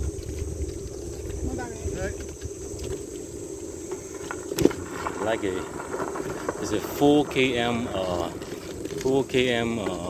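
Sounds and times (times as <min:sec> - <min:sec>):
bicycle rolling on concrete: 0:00.0 - 0:10.0
wind: 0:00.0 - 0:10.0.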